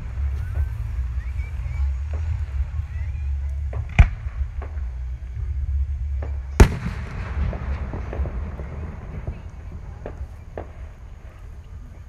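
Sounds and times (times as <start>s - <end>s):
firework bursts: 0.0s - 12.0s.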